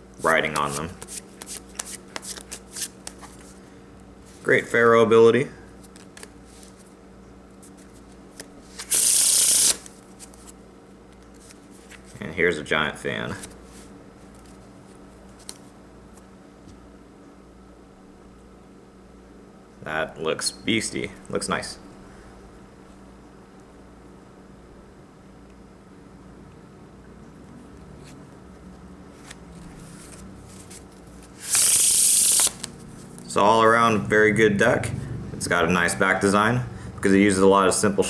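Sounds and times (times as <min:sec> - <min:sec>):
room hum: 0:00.0 - 0:38.0
cards clicking in hands: 0:00.5 - 0:03.4
playing cards snapping: 0:00.5 - 0:03.4.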